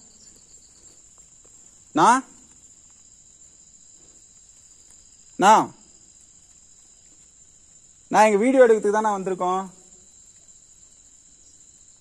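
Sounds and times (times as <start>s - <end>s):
crickets chirping: 0.0s - 12.0s.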